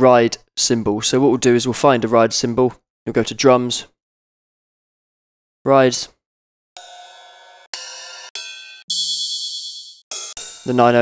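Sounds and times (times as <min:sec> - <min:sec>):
ride cymbal hits: 0:06.8 - 0:11.0.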